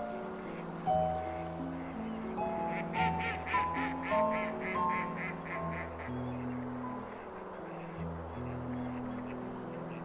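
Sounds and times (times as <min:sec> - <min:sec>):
soft background music: 0:00.0 - 0:10.0
duck quacking: 0:02.7 - 0:06.5.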